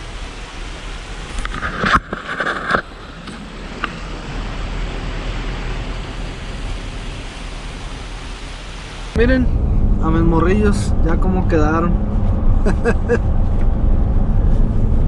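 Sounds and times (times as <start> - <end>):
wind rumble on microphone: 9.1 - 15.0.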